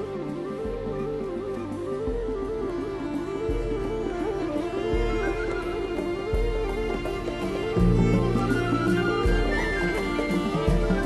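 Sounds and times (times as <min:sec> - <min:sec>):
slow stepping melody: 0:00.0 - 0:11.0.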